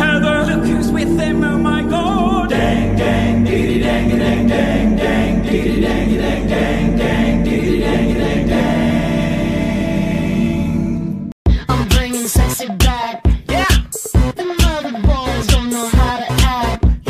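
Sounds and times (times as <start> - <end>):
choral singing over a beat: 0.0 - 17.0.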